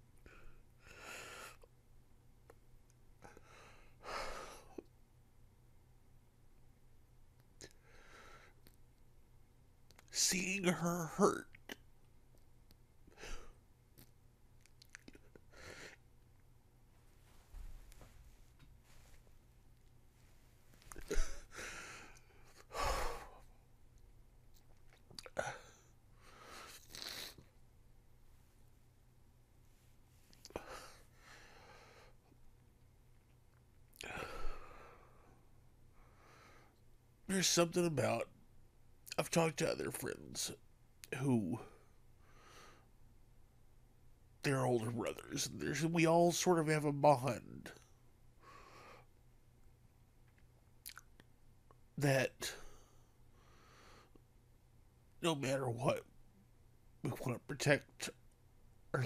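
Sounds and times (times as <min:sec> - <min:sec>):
mouth clicks and lip smacks: 0:09.8 - 0:10.1, 0:13.9 - 0:15.4, 0:24.5 - 0:25.4, 0:50.2 - 0:51.8
man sighing heavily: 0:21.0 - 0:23.4, 0:34.0 - 0:35.0.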